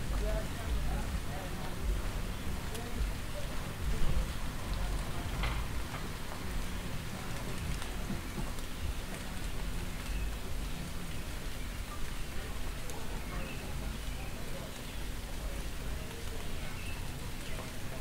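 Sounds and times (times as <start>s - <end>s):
rain falling on surfaces: 0.0s - 18.0s.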